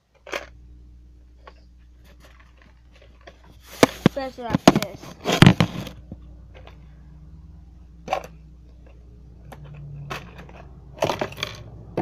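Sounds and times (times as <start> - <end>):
jewellery clicking and rattling: 8.0 - 11.8.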